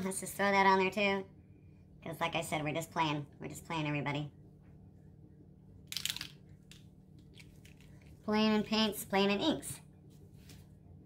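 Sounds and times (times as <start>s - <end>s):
plastic dropper bottle squish: 5.9s - 8.2s.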